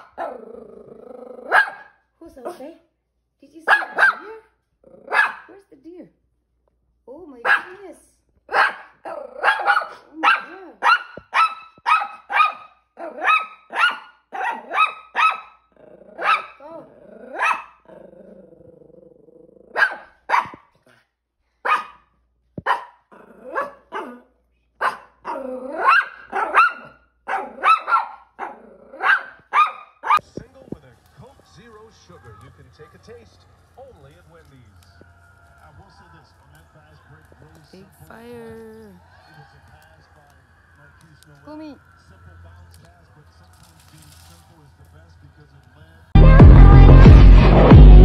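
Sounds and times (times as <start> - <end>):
dog growling: 0.0 - 1.7, 4.8 - 5.4, 9.0 - 10.8, 15.7 - 20.0, 23.1 - 24.4, 25.2 - 29.5
small dog yapping: 1.4 - 1.9, 3.7 - 4.3, 5.0 - 5.5, 8.5 - 15.6, 16.2 - 17.8, 19.7 - 21.0, 21.6 - 22.0, 22.6 - 30.2.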